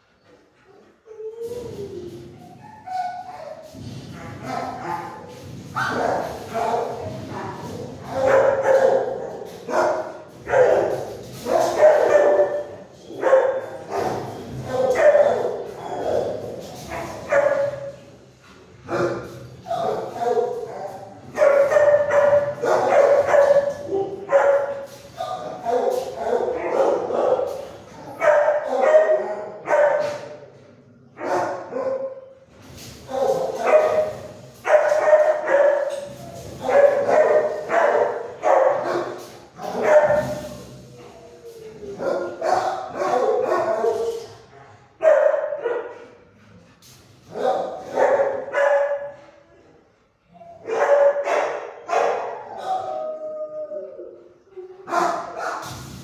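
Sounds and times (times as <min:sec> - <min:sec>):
dogs barking and yipping: 0:07.7 - 0:18.0, 0:19.7 - 0:30.1, 0:33.1 - 0:44.3, 0:47.3 - 0:49.1, 0:50.4 - 0:53.6, 0:54.9 - 0:55.6.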